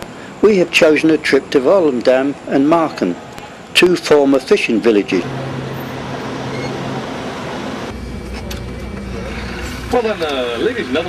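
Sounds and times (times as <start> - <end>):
road rumble: 0.0 - 11.0
vehicle engine hum: 4.8 - 11.0.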